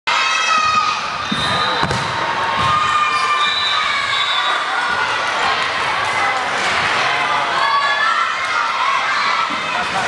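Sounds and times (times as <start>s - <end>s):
girls shouting and cheering: 2.3s - 10.0s.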